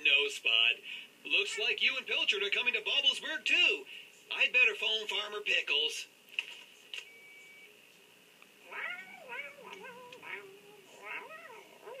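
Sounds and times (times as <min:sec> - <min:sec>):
cat meowing: 0:08.6 - 0:12.0.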